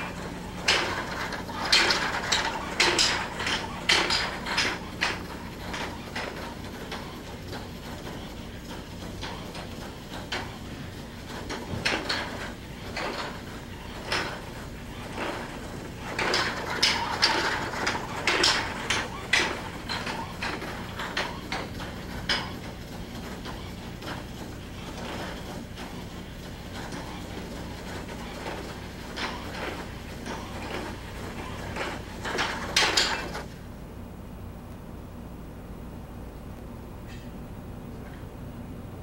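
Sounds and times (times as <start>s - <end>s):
robot joints clattering: 0.0s - 7.1s
actuator mechanisms clicking: 0.0s - 33.5s
steady low hum: 0.0s - 39.0s.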